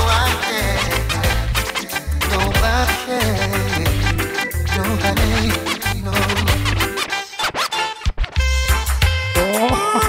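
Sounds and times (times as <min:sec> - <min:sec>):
reggae music with heavy bass: 0:00.0 - 0:10.0
turntable scratch: 0:00.0 - 0:10.0.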